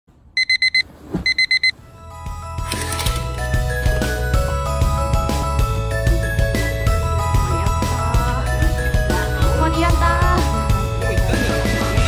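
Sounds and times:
electronic alarm beeping: 0.4 - 1.8.

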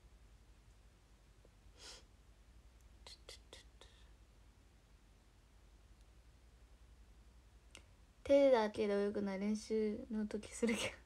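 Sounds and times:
woman whispering: 3.0 - 4.1.

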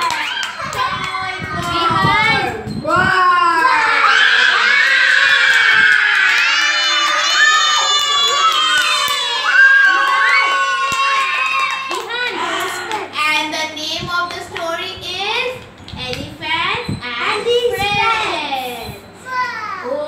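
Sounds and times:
young children shouting: 3.3 - 13.1.

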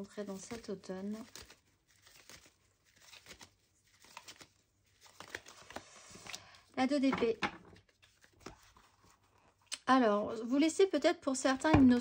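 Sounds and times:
cards being shuffled: 0.1 - 9.4.

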